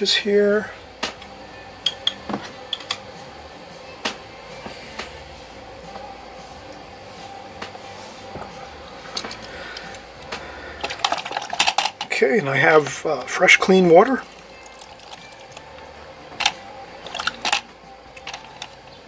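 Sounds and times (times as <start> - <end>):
faint steady hum: 0.0 - 19.0
painting supplies clicking and clinking: 10.8 - 12.2, 16.4 - 18.8.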